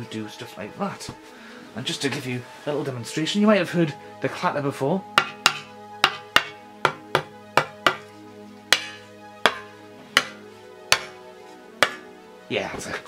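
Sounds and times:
wooden swords clacking: 8.7s - 11.2s, 11.8s - 12.1s.

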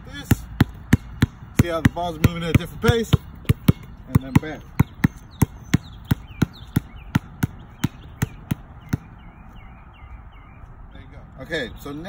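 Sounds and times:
basketballs bouncing on concrete: 0.0s - 9.4s.

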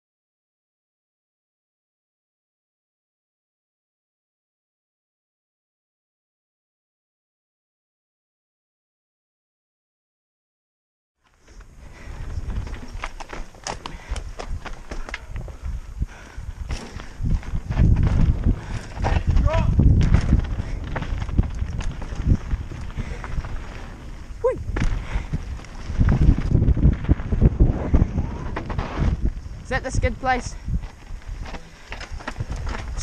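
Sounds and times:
tyres on loose dirt: 11.2s - 33.0s
bike rattling and clicking: 11.3s - 33.0s
wind buffeting microphone: 11.5s - 33.0s.

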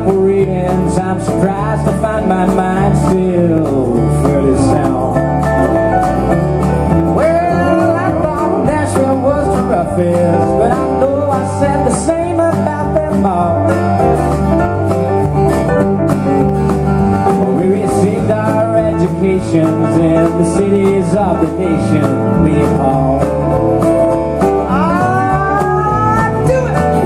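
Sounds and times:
man singing: 0.0s - 5.8s, 6.9s - 14.6s, 17.2s - 27.0s
drums: 0.0s - 27.0s
electric guitar: 0.0s - 27.0s
strummed acoustic guitar: 0.0s - 27.0s.

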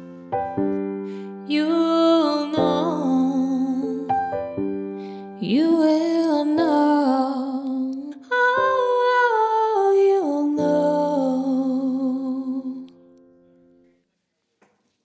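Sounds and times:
piano backing track: 0.0s - 13.9s
woman singing long held notes: 1.5s - 4.1s.

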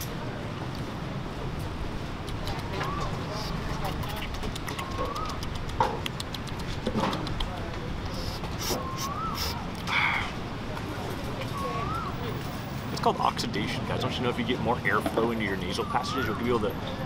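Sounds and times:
market background noise: 0.0s - 17.0s.

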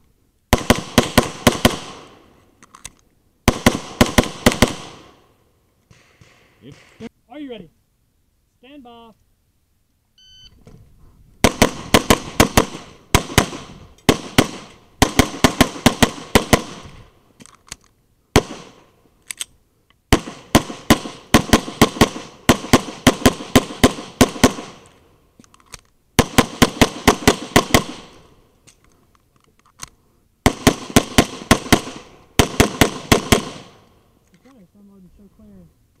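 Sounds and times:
pistol firing: 0.5s - 2.2s, 3.5s - 5.2s, 11.4s - 16.8s, 18.4s - 18.8s, 20.1s - 24.8s, 26.2s - 28.2s, 30.4s - 33.8s
shot timer beep: 10.2s - 10.6s.

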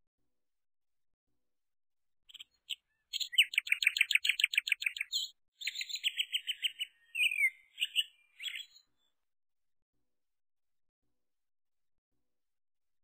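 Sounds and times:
songbird chirping and trilling: 2.3s - 9.1s.

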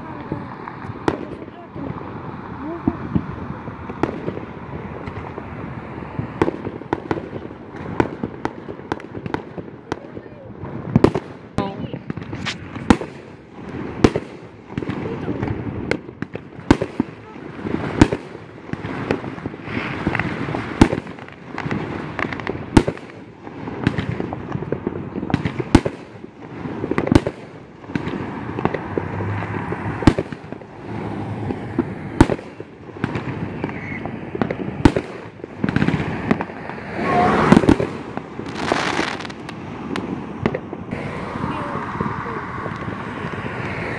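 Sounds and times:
fireworks bangs: 0.0s - 43.9s
fireworks hissing: 0.0s - 43.9s.

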